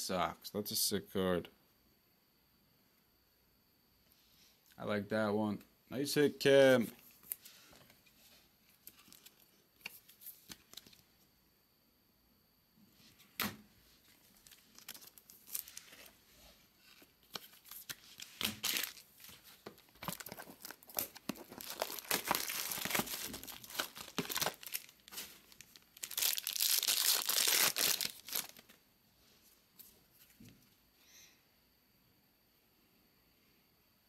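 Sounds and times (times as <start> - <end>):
wrapper tearing and crinkling: 14.3 - 16.1, 17.2 - 28.7.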